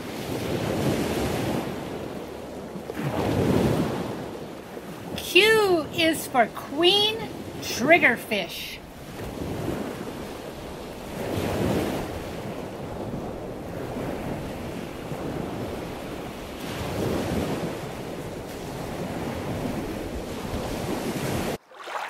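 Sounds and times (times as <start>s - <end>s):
water rushing: 5.2s - 9.0s, 21.5s - 22.0s.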